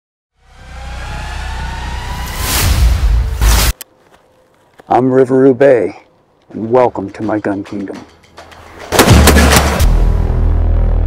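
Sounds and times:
rising tone: 0:00.3 - 0:03.8.

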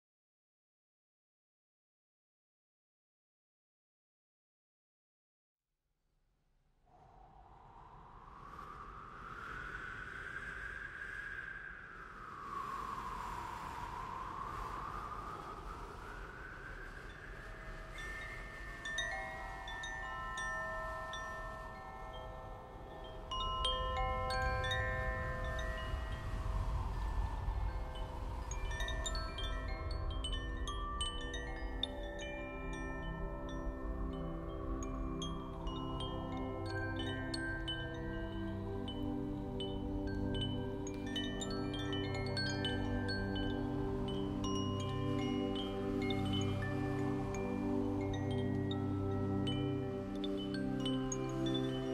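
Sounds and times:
slow gliding tone: 0:07.2 - 0:51.9
wind chimes ringing: 0:17.1 - 0:51.9.

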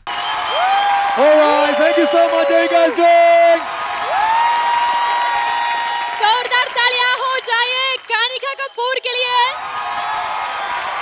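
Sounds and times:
high held vocal whoop: 0:00.0 - 0:06.4
applause and crowd noise: 0:00.0 - 0:11.0
person shouting an announcement: 0:01.2 - 0:03.6.

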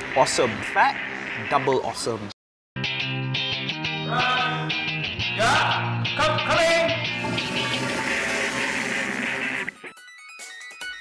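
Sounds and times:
upbeat background music: 0:02.8 - 0:11.0.

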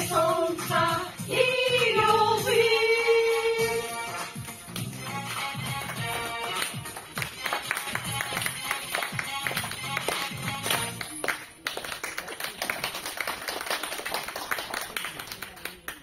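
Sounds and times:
song accompaniment: 0:00.0 - 0:11.3
audience applause: 0:05.9 - 0:16.0.

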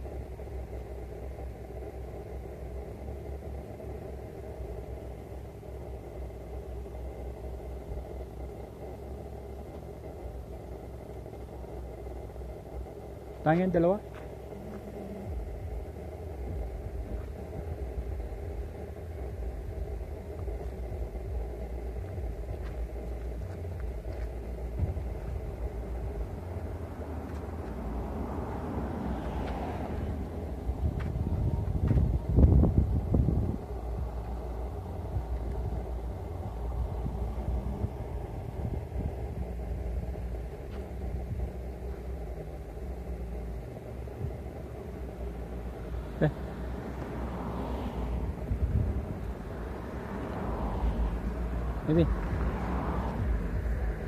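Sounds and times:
road traffic: 0:00.0 - 0:54.0
wind: 0:00.0 - 0:54.0
vehicle passing close by: 0:13.8 - 0:54.0.

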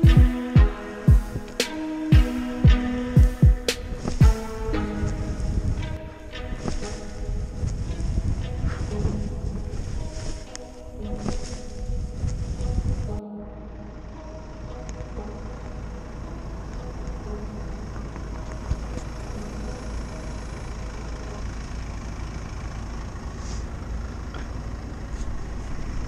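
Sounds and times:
car engines rumbling: 0:00.0 - 0:26.0.

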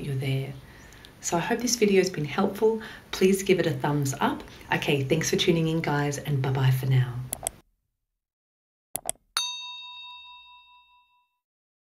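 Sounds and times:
quick clicks: 0:09.0 - 0:09.2
bell ding: 0:09.4 - 0:11.4.

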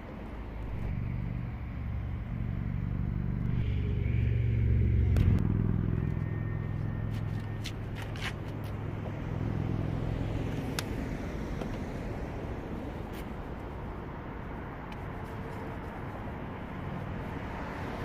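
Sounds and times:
vehicle hum: 0:00.0 - 0:18.0.

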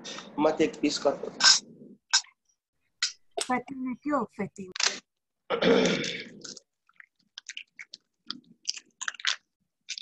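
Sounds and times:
mouth and lip clicks: 0:01.4 - 0:02.4, 0:05.9 - 0:10.0
person clearing throat: 0:05.5 - 0:06.4.

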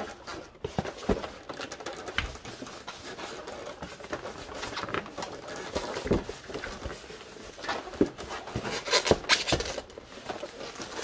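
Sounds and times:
packing material rustling: 0:00.0 - 0:11.0.

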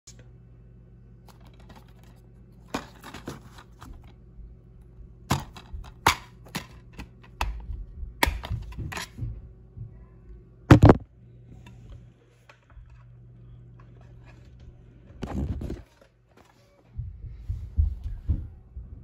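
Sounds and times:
low steady hum: 0:00.1 - 0:19.0.

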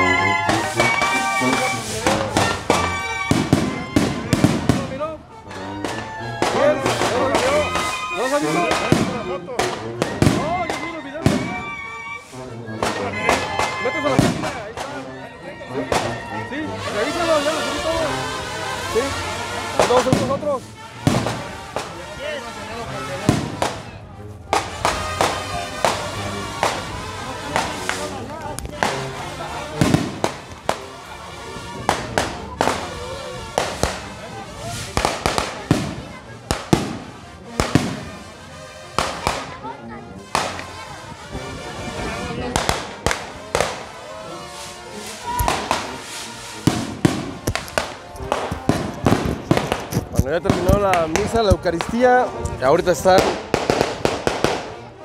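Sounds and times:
music: 0:00.0 - 0:55.0
voices: 0:00.0 - 0:55.0
skyrockets banging: 0:00.4 - 0:11.8, 0:24.5 - 0:31.0, 0:45.0 - 0:52.0.

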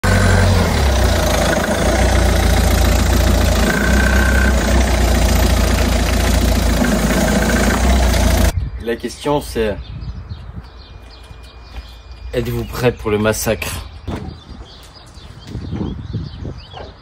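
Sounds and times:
car engine running loudly: 0:00.0 - 0:08.5.

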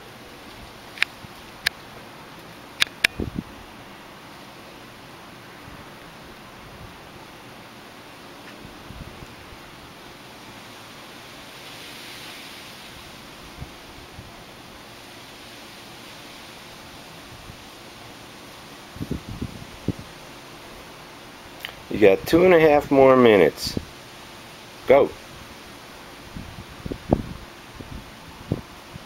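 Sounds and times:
steady background hiss: 0:00.0 - 0:29.0.

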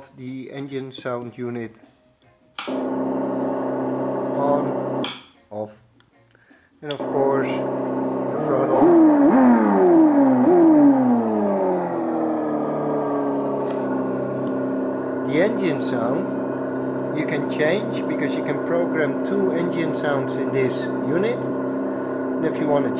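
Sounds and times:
simulated engine idling and revving: 0:02.7 - 0:05.0, 0:07.0 - 0:22.9.

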